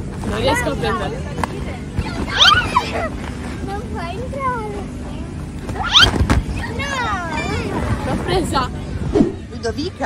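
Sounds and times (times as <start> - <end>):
steady low hum: 0.0 - 10.0
girls squealing and shrieking: 2.2 - 3.1, 5.8 - 7.8.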